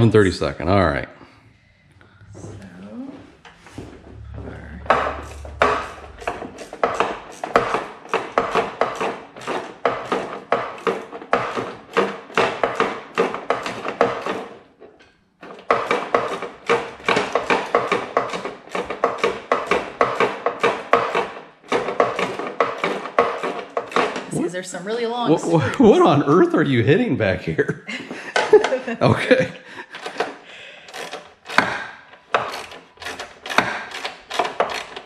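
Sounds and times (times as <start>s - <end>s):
tool knocking against metal grille: 4.8s - 14.5s, 15.5s - 24.3s
ratchet clicking: 30.9s - 31.7s.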